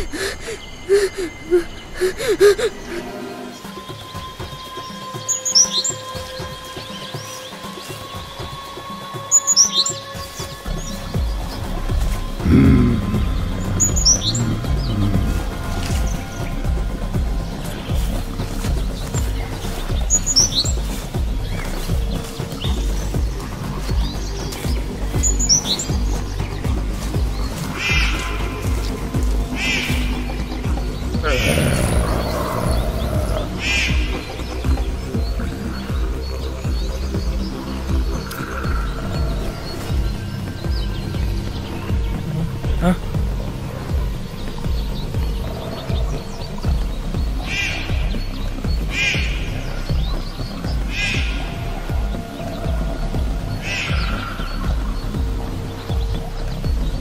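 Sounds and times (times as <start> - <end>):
low pulsing drone: 0.0 - 5.2, 10.0 - 57.0
birds chirping: 0.0 - 57.0
forest background: 0.0 - 57.0
suspense film score: 0.0 - 57.0.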